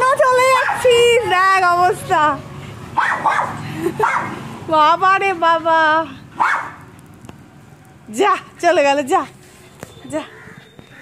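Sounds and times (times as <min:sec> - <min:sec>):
small dog barking: 0:03.0 - 0:04.3, 0:06.4 - 0:06.8.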